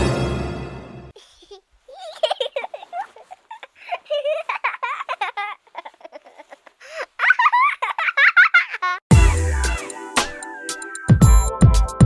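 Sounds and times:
child laughing and giggling: 0:01.1 - 0:09.1.

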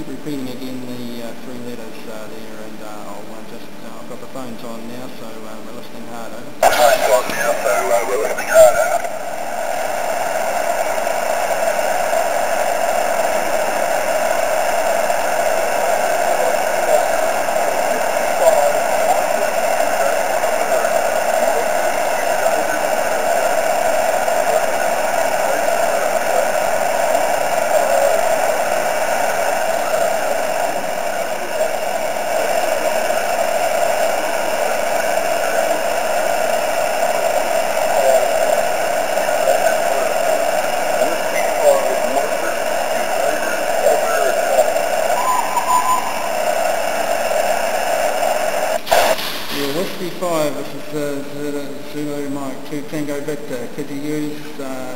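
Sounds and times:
radio receiver hiss: 0:00.0 - 0:54.9.

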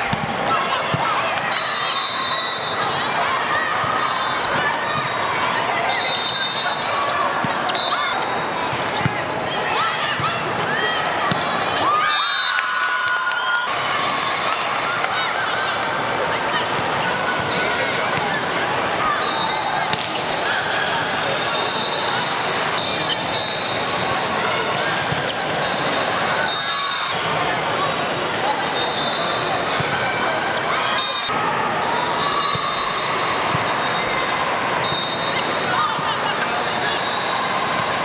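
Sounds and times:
volleyballs struck and bouncing: 0:00.0 - 0:01.4, 0:07.4 - 0:07.8, 0:10.1 - 0:11.9, 0:19.8 - 0:20.3
chatter of players and spectators: 0:00.0 - 0:38.0.

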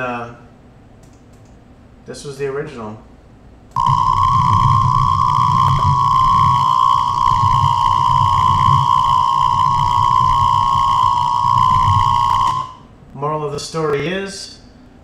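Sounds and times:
rough low buzz: 0:03.7 - 0:13.0
radio interference high whine: 0:03.8 - 0:13.0.

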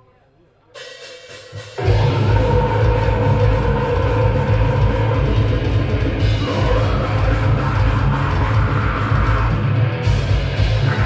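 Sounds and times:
metal band playing live: 0:01.7 - 0:11.0.

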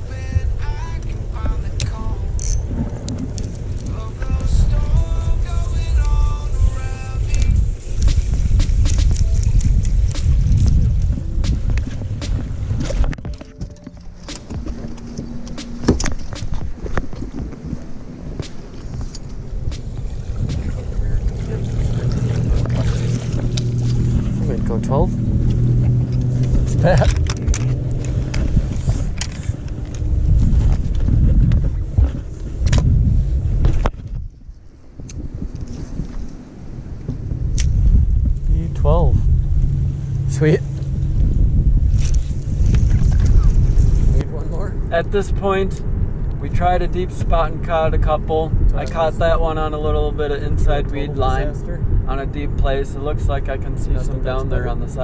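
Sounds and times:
steady low hum: 0:00.0 - 0:55.0
wind rumbling against microphone: 0:00.0 - 0:55.0
gear clicking and knocking: 0:25.4 - 0:30.0.

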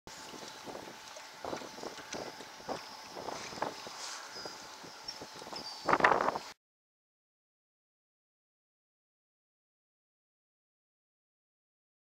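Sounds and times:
wind on microphone: 0:00.1 - 0:06.6.

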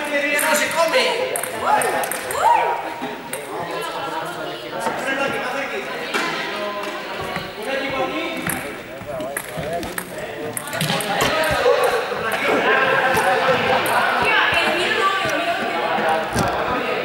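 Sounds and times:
students chatting: 0:00.0 - 0:17.0
sharp taps: 0:06.8 - 0:17.0.

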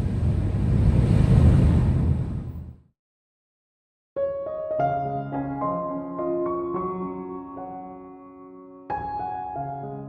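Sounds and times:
car road and engine rumble: 0:00.0 - 0:02.8.

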